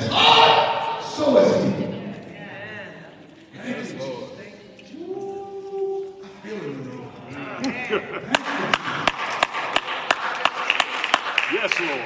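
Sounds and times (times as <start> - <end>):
hands clapping: 7.6 - 12.0.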